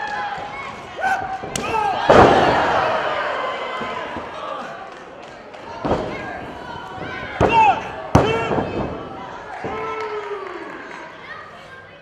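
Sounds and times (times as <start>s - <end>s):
people shouting: 0.9s - 4.0s.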